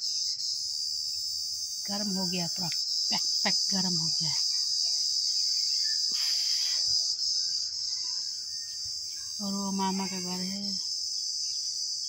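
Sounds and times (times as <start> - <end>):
high-pitched insect drone: 0.0 - 12.0
burst of hiss: 5.8 - 7.1.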